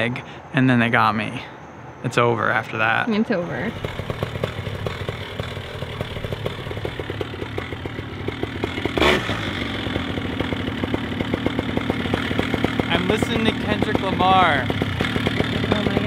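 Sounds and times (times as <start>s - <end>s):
paramotor engine idling: 3.7s - 16.0s.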